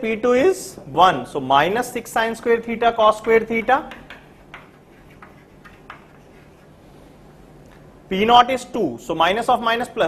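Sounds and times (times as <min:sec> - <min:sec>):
faint room hum: 0:00.0 - 0:10.0
chalk tapping and scratching: 0:02.2 - 0:07.1.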